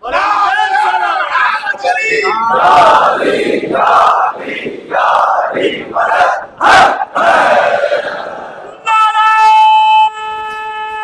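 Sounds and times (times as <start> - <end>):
crowd of men shouting slogans: 0.0 - 8.8.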